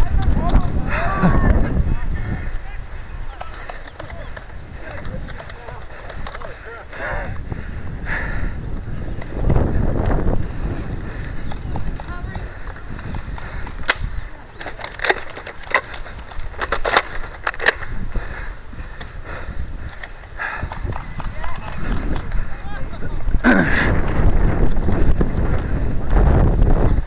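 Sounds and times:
wind and movement rumble: 0.0 - 27.0
sharp clicks and snaps: 3.3 - 6.6, 11.3 - 18.0.

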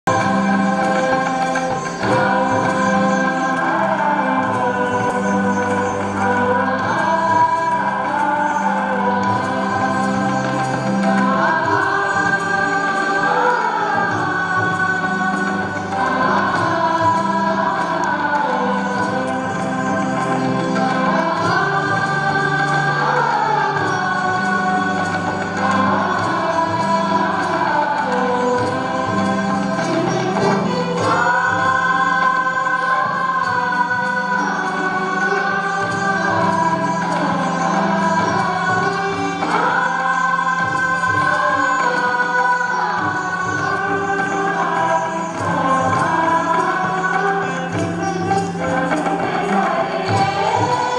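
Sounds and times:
sitar ensemble music: 0.0 - 50.9
voices singing in unison: 0.0 - 50.9.

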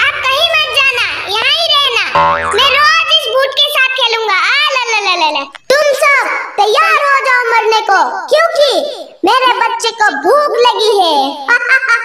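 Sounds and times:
high sped-up cartoon voice: 2.2 - 2.8
springy sound effect: 2.2 - 2.8.

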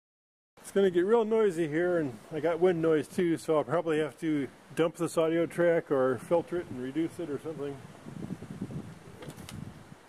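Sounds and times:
wind buffeting microphone: 2.7 - 10.0.

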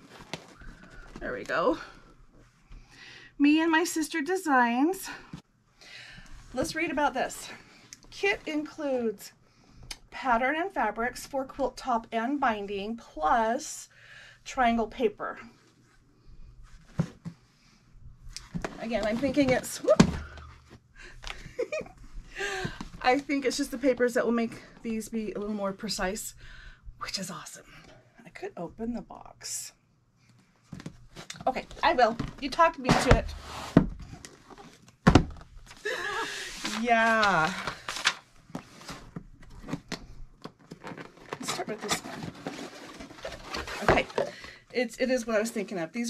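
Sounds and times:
cardboard box handling noise: 36.5 - 44.4
cardboard box being opened: 40.7 - 44.3.

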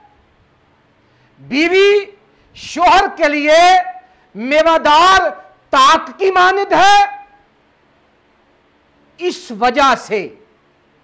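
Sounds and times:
man speaking: 1.4 - 7.3, 9.2 - 10.4.

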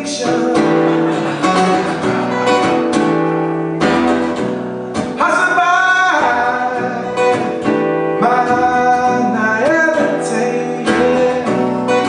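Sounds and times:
man singing: 0.0 - 2.2, 5.1 - 12.0
strummed acoustic guitar: 0.0 - 12.0.

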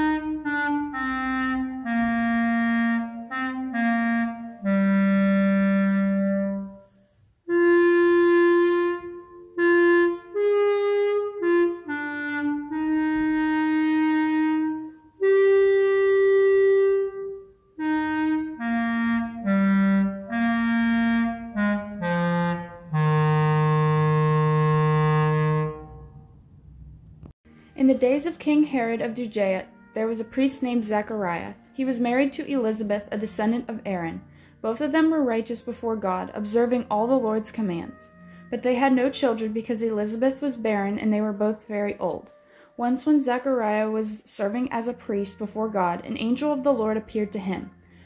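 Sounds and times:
clarinet holding low note: 0.0 - 26.4, 37.6 - 39.4.

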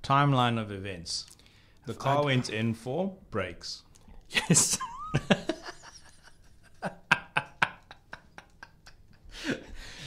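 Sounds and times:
breath: 1.4 - 1.8, 9.3 - 10.0
men laughing quietly: 4.3 - 10.0.

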